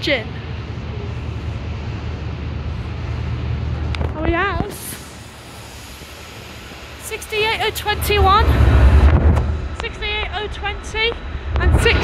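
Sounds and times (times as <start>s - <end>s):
diesel locomotive engine rumble: 0.0s - 12.0s.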